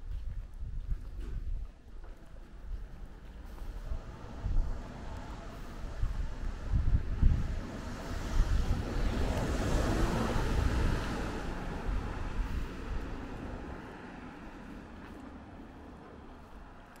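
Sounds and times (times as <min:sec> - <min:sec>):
tyre noise on road: 0:00.0 - 0:17.0
wind buffeting microphone: 0:00.0 - 0:17.0
small car driving past: 0:03.3 - 0:15.2.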